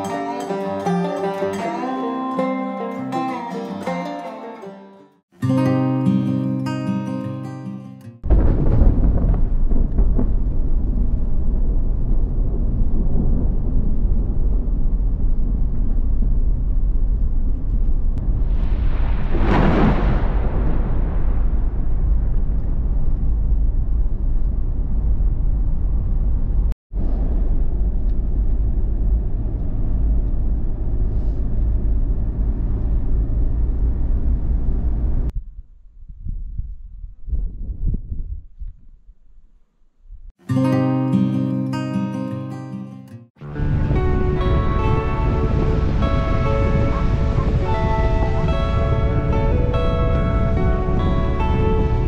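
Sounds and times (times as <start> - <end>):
rushing swell: 18.2 - 25.0, 43.4 - 52.0
vehicle road and engine rumble: 21.4 - 35.4.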